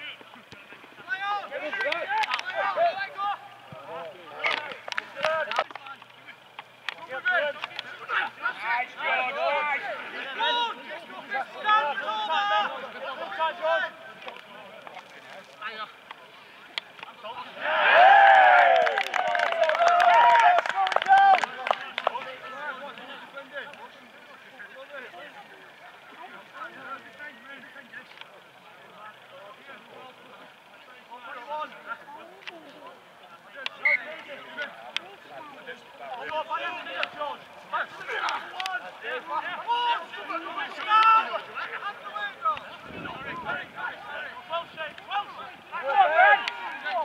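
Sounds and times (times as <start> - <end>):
players shouting: 0.0 - 14.8, 16.8 - 28.0, 33.3 - 47.0.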